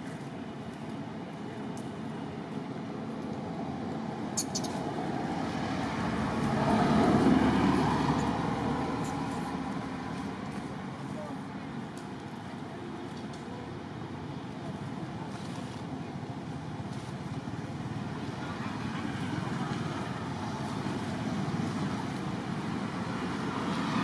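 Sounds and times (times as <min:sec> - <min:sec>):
vehicle passing by: 0:04.0 - 0:10.9, 0:17.3 - 0:24.0.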